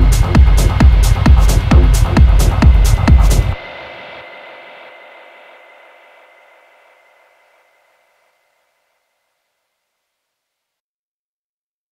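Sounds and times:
hissing wash of noise: 2.0 - 8.8.

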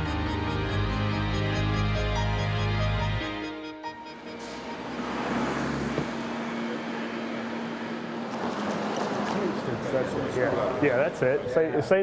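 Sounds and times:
engine hum: 0.0 - 11.5
vehicles driving through intersection: 3.1 - 12.0.

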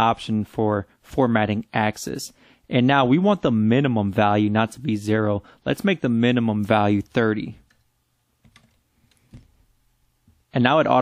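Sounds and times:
faint keyboard keystrokes: 7.6 - 9.6.

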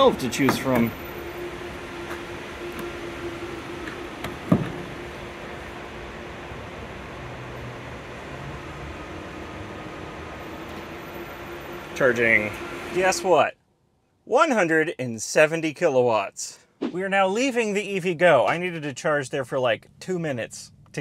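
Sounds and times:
mechanical hum: 0.0 - 13.4.

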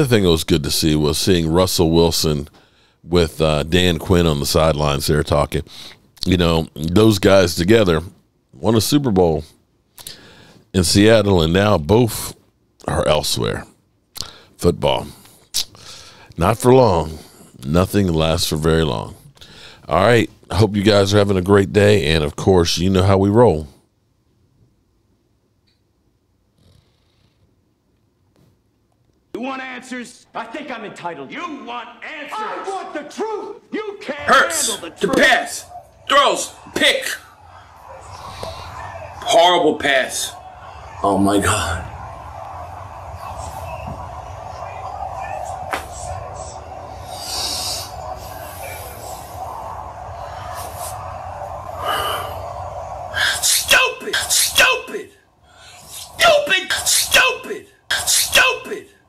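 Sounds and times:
steady background noise: 29.0 - 59.0
man yelling: 31.4 - 37.2, 53.4 - 55.2, 56.2 - 59.0.

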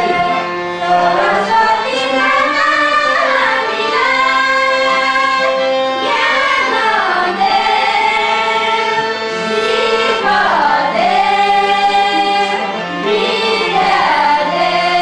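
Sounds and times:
women singing together: 0.0 - 15.0.

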